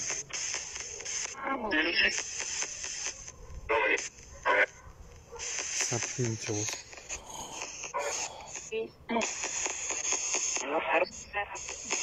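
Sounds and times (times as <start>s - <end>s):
high hiss: 5.4s - 8.7s
fragments of voices: 5.9s - 9.3s.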